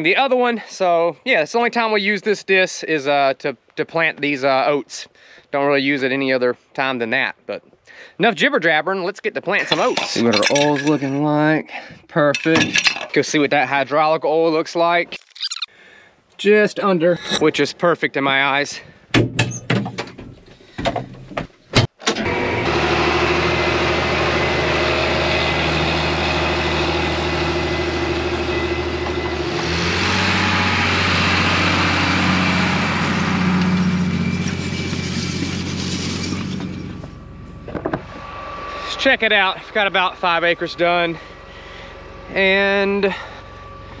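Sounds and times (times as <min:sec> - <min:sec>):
tractor diesel engine droning: 0:22.1 - 0:44.0.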